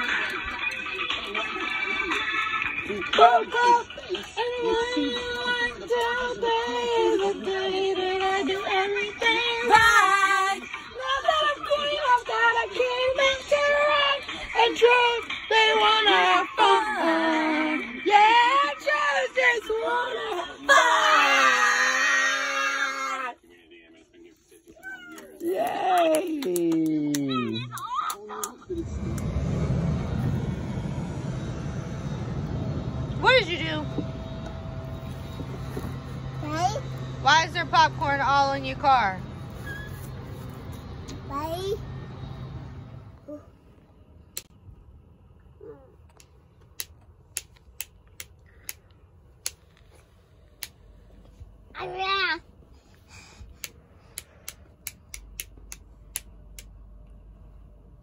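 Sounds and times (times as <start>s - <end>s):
low rumble with hum: 0.0s - 58.0s.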